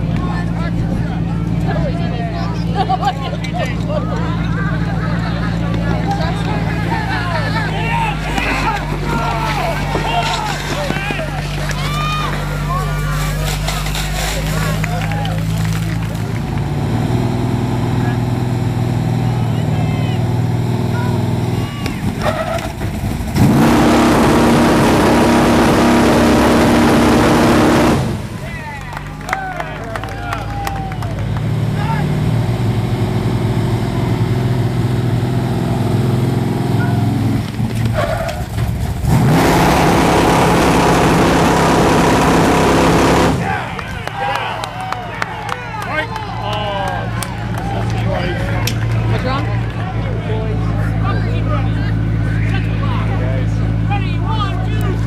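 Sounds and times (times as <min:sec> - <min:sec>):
crowd voices: 0:00.0 - 0:55.0.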